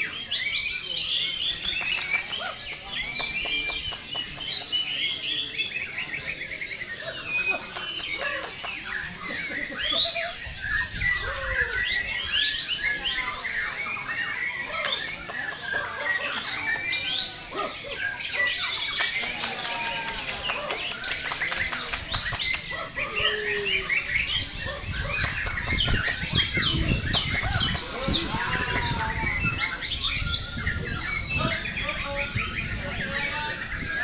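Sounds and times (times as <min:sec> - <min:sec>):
birds singing whistles and trills: 0:00.0 - 0:34.0
murmur of voices: 0:00.0 - 0:34.0.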